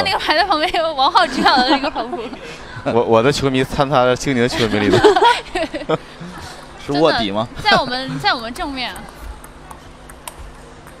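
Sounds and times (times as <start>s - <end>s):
table tennis ball clicks: 8.6s - 11.0s.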